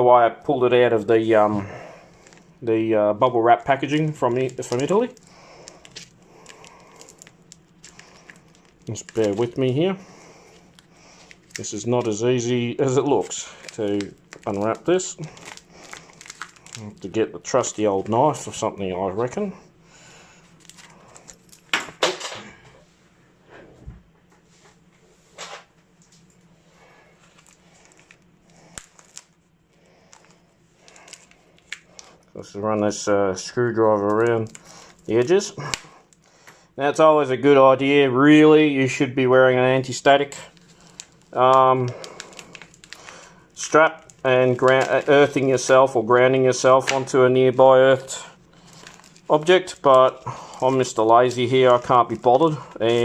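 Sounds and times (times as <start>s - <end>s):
plastic packaging crinkling: 0.8s - 19.5s, 20.1s - 22.2s, 26.8s - 36.6s, 39.8s - 53.0s
small crackles: 1.9s - 2.7s, 3.5s - 17.8s, 20.2s - 21.8s, 26.0s - 32.4s, 33.8s - 36.6s, 40.0s - 46.0s, 47.9s - 53.0s.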